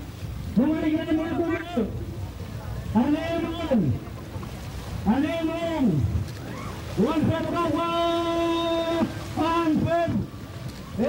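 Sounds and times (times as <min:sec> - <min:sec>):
paddlers chanting call: 0:00.0 - 0:11.0
water rushing: 0:00.0 - 0:11.0
wind: 0:00.0 - 0:11.0.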